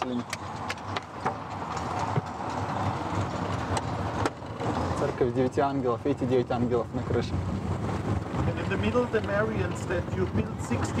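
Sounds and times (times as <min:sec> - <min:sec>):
tyres rumbling: 0:00.0 - 0:11.0.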